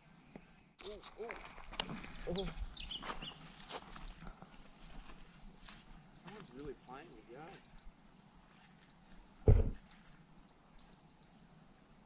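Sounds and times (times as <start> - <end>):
knocks and clatter on stones: 0.8 - 3.2.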